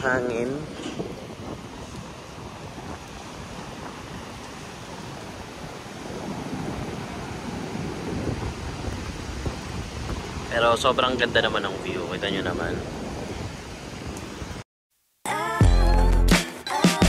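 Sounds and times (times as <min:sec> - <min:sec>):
surf breaking on beach: 0:00.0 - 0:14.6
wind buffeting microphone: 0:00.0 - 0:14.6.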